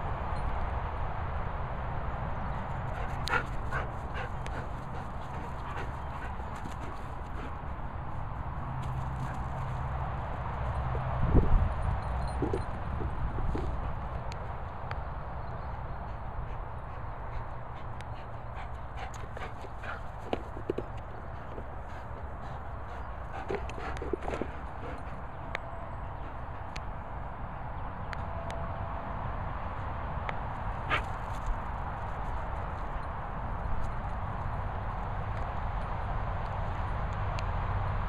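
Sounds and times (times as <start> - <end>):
wind buffeting microphone: 0.0 - 28.4.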